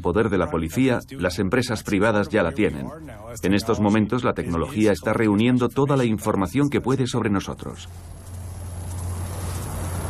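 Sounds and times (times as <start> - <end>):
faint high whine: 0.0 - 10.0
street traffic rumble: 0.0 - 10.0.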